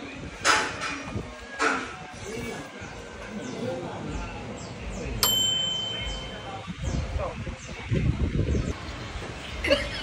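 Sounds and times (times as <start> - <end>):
low chatter: 0.0 - 10.0
bright ding: 5.2 - 6.6.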